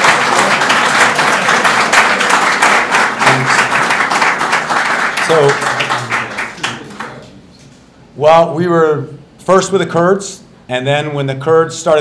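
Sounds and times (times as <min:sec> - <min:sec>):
audience applause: 0:00.0 - 0:07.3.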